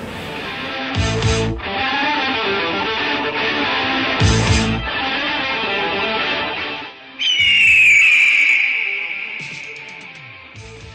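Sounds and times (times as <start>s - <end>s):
bird of prey screech: 7.2s - 10.6s.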